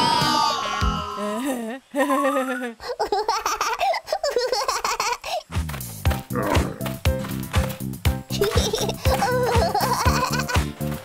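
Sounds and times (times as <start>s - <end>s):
children's background music: 5.9s - 11.0s
giggly cartoon character voice: 8.3s - 10.6s.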